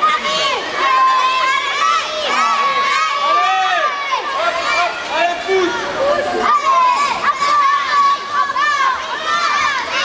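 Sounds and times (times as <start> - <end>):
children shouting and cheering: 0.0 - 10.0.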